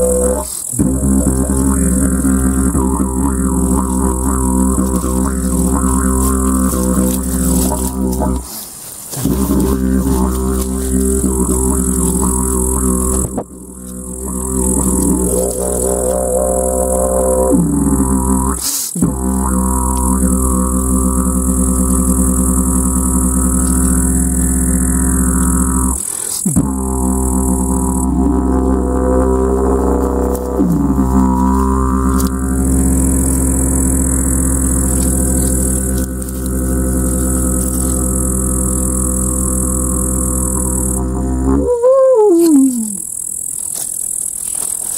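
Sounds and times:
didgeridoo call rising and falling: 0:00.0 - 0:44.9
didgeridoo drone: 0:00.0 - 0:44.9.

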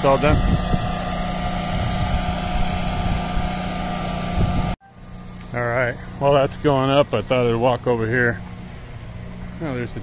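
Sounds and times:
wind on microphone: 0:00.0 - 0:04.8
motor drive humming: 0:00.0 - 0:10.0.

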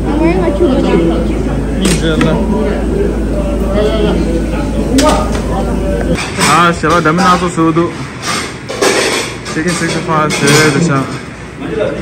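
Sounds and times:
people talking: 0:00.0 - 0:08.0, 0:09.5 - 0:12.0.

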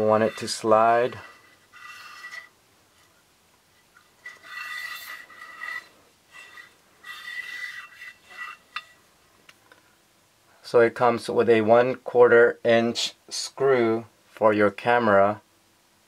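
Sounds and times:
camera slider scraping with squeal: 0:00.2 - 0:02.5, 0:04.0 - 0:09.0.

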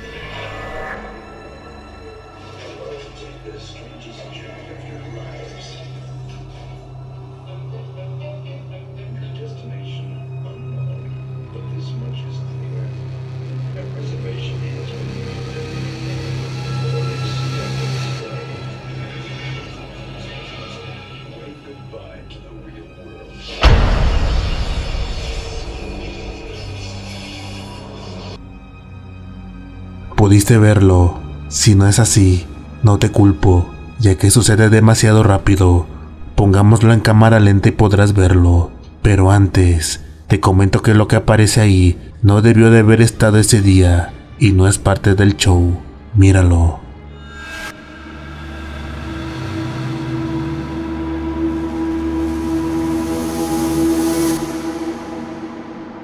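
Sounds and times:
loud rumbling crash: 0:23.4 - 0:28.1.

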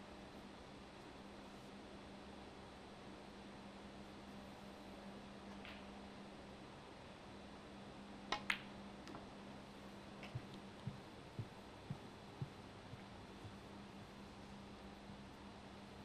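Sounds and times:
faint steady hum: 0:00.0 - 0:16.0
snooker balls clicking: 0:08.3 - 0:09.2.

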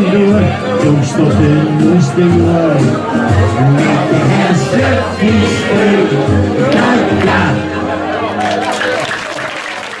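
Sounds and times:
voices: 0:00.0 - 0:09.4
audience applauding: 0:08.3 - 0:10.0.

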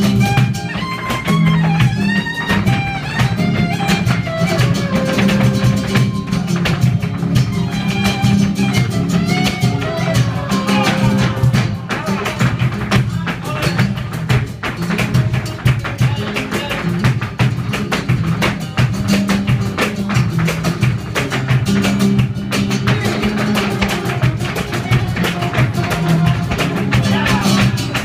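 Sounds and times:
dancers' footwork: 0:00.0 - 0:28.0
flamenco guitar: 0:00.0 - 0:28.0
hand clapping: 0:00.0 - 0:28.0.

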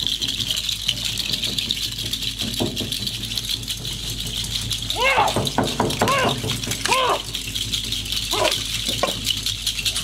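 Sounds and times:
dance rattles shaken: 0:00.0 - 0:10.0.

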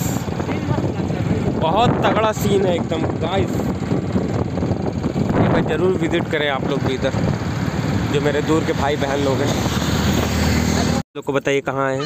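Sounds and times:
vehicle road and wind noise: 0:00.0 - 0:11.0.

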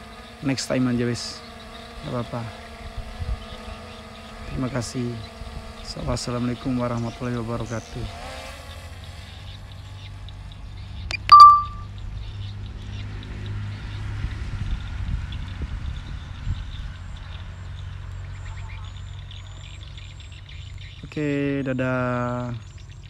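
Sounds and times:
birds chirping: 0:00.0 - 0:14.1, 0:15.2 - 0:23.0
loud high tone: 0:11.1 - 0:11.8.

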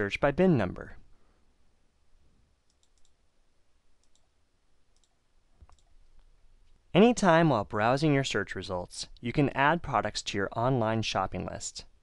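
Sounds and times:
computer mouse clicks: 0:02.6 - 0:03.2, 0:04.0 - 0:04.3, 0:04.9 - 0:06.8.

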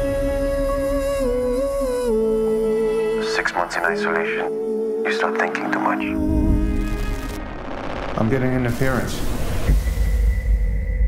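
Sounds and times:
trailer score music: 0:00.0 - 0:11.0.

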